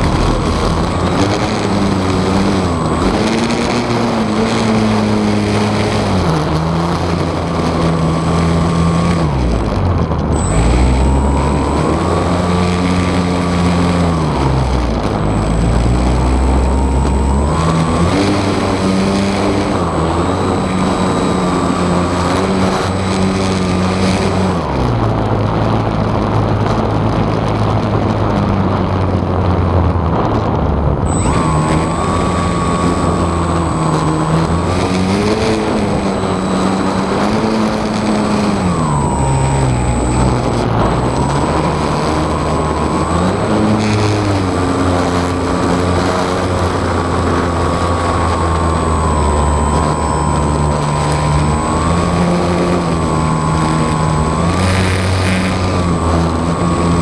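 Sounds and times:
model airplane motor and propeller: 0:00.0 - 0:57.0
wind noise: 0:00.0 - 0:57.0.

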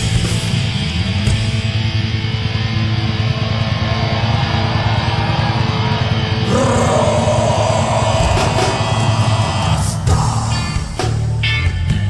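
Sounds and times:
distorted guitar: 0:00.0 - 0:12.0
electric bass: 0:00.0 - 0:12.0
live rock band playing: 0:00.0 - 0:12.0.

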